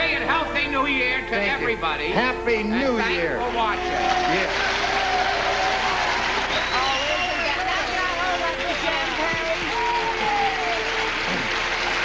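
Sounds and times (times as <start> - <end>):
audience applauding: 3.5 - 12.0.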